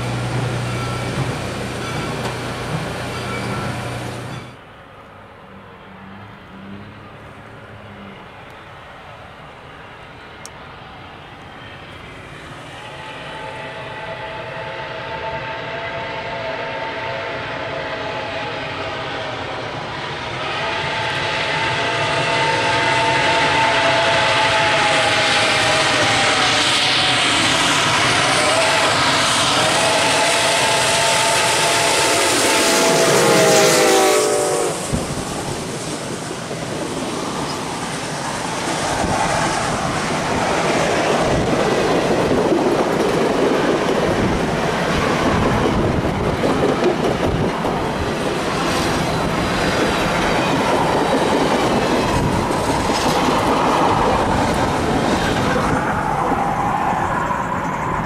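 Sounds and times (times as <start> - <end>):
train wheels clacking on rail joints: 0.0 - 4.6, 40.7 - 56.2
steam locomotive whistle: 12.6 - 36.2.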